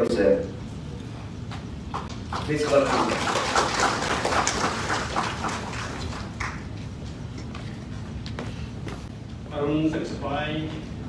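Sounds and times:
audience applause: 2.2 - 6.7.

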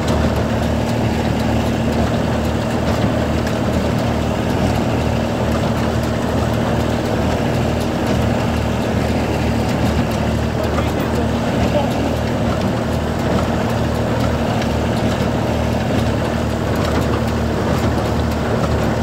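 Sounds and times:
baler mechanism clicking: 0.0 - 19.0
tractor diesel engine running: 0.0 - 19.0.

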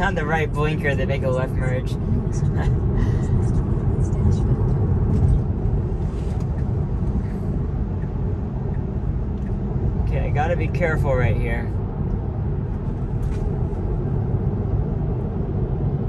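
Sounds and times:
road and tyre noise in car: 0.0 - 16.0.

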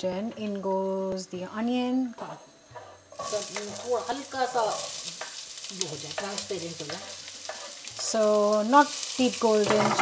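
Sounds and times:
onion sizzling in hot oil: 1.6 - 10.0.

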